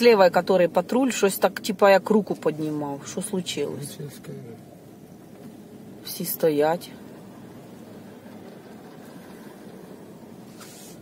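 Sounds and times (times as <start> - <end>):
car engine idling: 0.0 - 11.0
brief hiss: 10.4 - 11.0.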